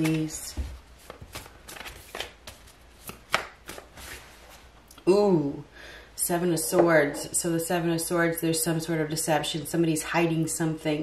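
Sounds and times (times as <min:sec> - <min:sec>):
cards being shuffled: 0:00.0 - 0:04.7.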